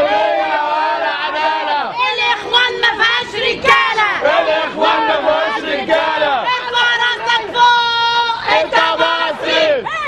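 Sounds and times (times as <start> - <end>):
women shouting angrily: 0.0 - 10.0.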